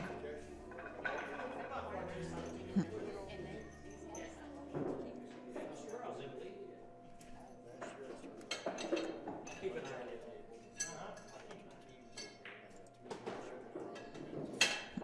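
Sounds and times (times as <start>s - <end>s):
pool balls clinking: 0.0s - 2.6s, 7.7s - 15.0s.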